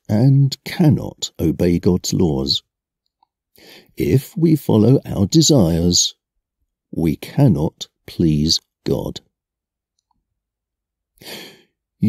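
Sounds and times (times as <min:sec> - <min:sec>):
man breathing in: 0:03.6 - 0:04.0, 0:11.2 - 0:11.8.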